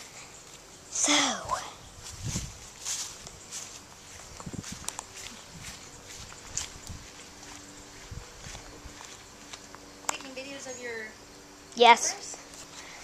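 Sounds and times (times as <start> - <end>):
footsteps through grass: 1.9 - 9.7.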